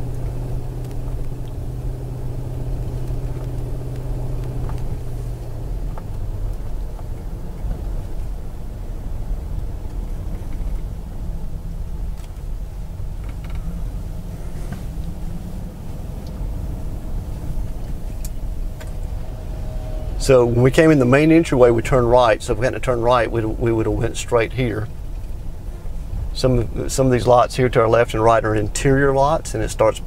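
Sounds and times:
car engine hum: 0.0s - 30.0s
road rumble: 0.0s - 30.0s.

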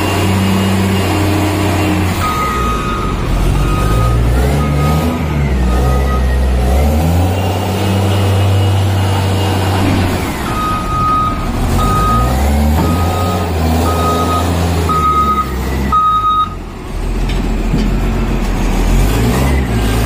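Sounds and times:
reversing alarm beeping: 0.0s - 16.8s
diesel engine running under load: 0.0s - 20.0s.

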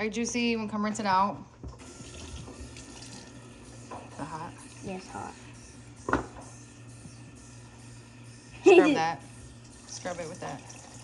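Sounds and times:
quiet background music: 0.0s - 11.0s
faucet running water into bowl: 1.8s - 5.5s, 9.0s - 11.0s.

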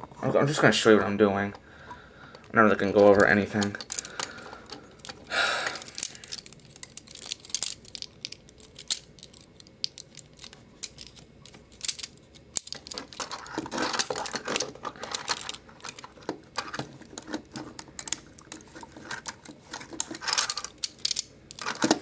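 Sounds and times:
plastic toy parts clicking: 3.1s - 22.0s
plastic scraping: 12.8s - 20.7s.

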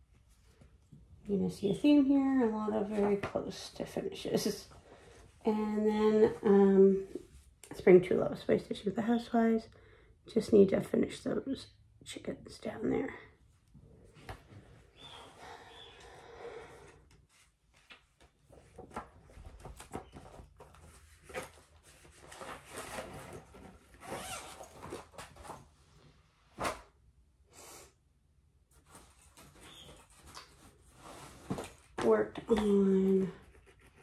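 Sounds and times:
zipper being worked: 22.7s - 25.0s.

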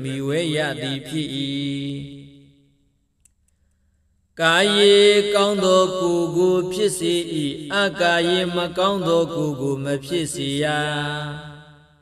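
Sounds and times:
man chanting: 0.0s - 2.6s, 4.4s - 12.0s
faint clicks: 3.2s - 3.8s.

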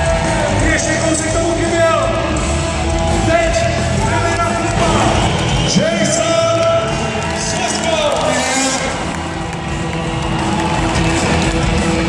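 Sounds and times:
loud live rock music: 0.0s - 12.0s.

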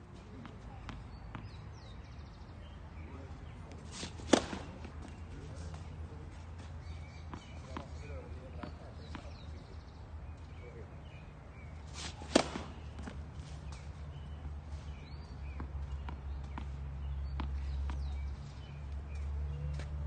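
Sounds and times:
tennis racket striking ball: 4.0s - 4.9s, 11.9s - 13.2s.

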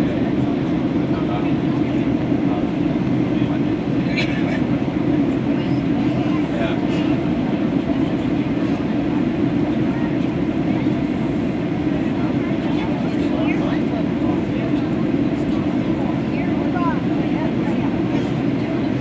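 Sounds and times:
airplane cabin engine drone: 0.0s - 19.0s
faint passenger voices: 0.0s - 19.0s.

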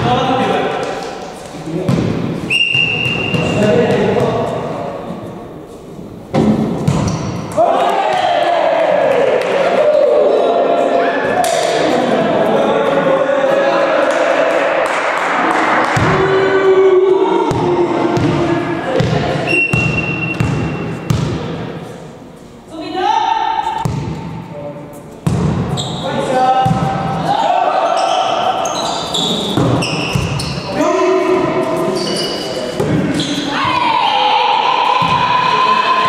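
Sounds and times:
volleyball slaps: 6.4s - 8.2s, 14.8s - 16.3s, 17.5s - 21.6s, 23.8s - 24.3s
players shouting: 7.5s - 20.0s, 26.3s - 29.3s, 33.0s - 36.0s.

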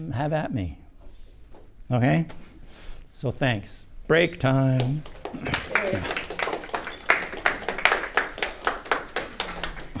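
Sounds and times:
hands clapping in applause: 4.8s - 10.0s.

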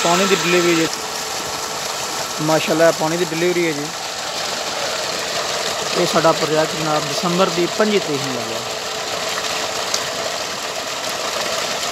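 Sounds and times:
water gushing and splashing: 0.0s - 11.9s.

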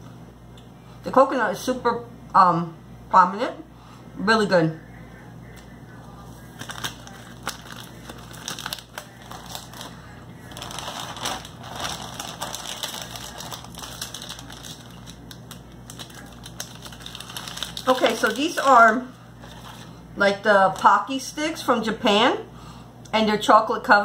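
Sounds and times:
wafer cookie crunching: 5.5s - 21.1s.

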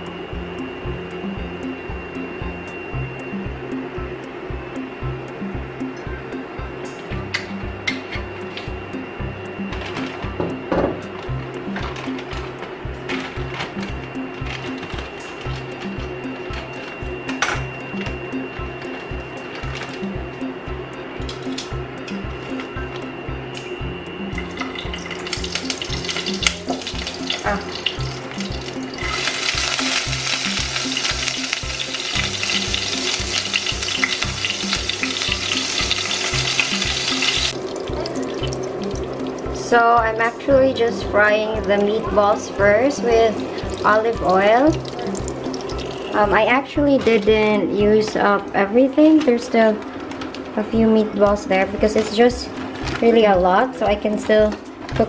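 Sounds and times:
background music with steady beat: 0.0s - 55.0s
food frying in hot oil: 24.4s - 39.7s, 41.2s - 46.3s.

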